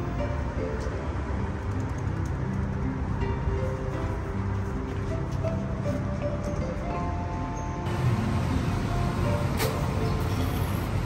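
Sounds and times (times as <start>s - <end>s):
faint background music: 0.0s - 11.0s
street traffic rumble: 0.0s - 11.0s.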